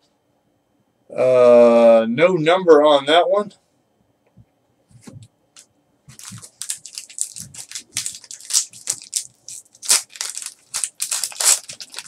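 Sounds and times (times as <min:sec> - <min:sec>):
foil pack crinkling and tearing: 0:06.1 - 0:12.0.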